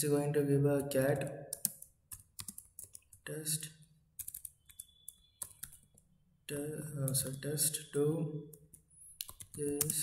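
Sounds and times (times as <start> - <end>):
computer keyboard keystrokes: 1.5 - 3.2, 4.2 - 6.0, 8.5 - 10.0.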